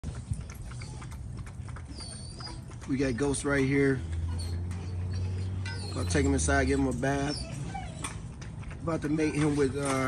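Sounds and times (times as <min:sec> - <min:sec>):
dog eating from metal bowl: 0:00.0 - 0:07.3, 0:07.9 - 0:10.0.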